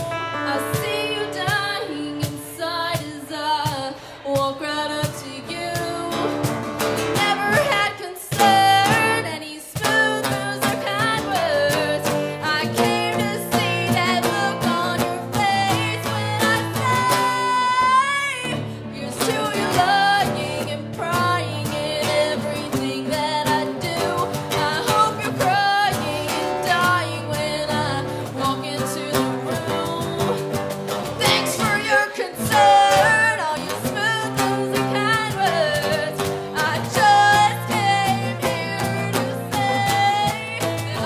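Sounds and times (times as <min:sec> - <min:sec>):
acoustic guitar: 0:00.0 - 0:41.0
bass guitar: 0:00.0 - 0:41.0
woman singing rock song: 0:00.0 - 0:41.0.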